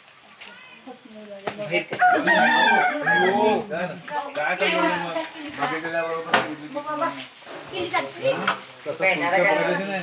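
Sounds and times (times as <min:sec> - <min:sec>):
rooster crowing loudly: 0:01.9 - 0:03.6.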